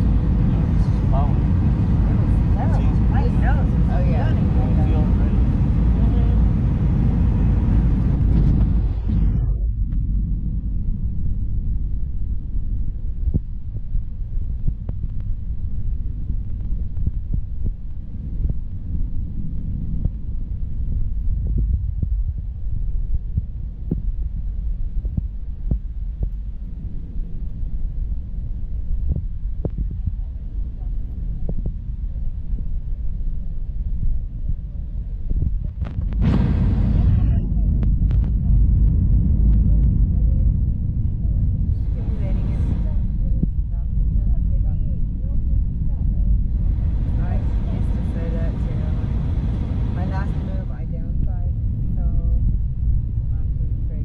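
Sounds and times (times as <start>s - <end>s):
aircraft cabin rumble: 0.0s - 54.0s.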